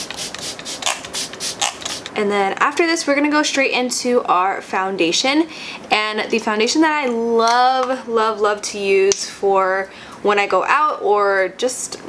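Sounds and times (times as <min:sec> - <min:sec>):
spray bottle hissing bursts: 0:00.0 - 0:02.2.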